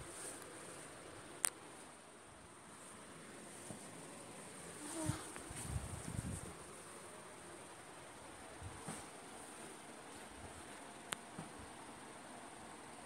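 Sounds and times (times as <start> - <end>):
low buzzing and rustling: 0.0 - 13.0.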